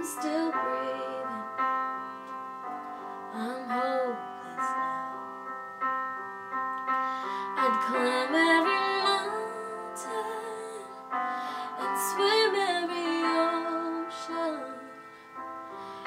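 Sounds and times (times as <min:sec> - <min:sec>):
woman singing wordless sliding notes: 0:00.0 - 0:01.6, 0:03.3 - 0:05.4, 0:07.5 - 0:15.1
slow ballad piano chords: 0:00.0 - 0:16.0.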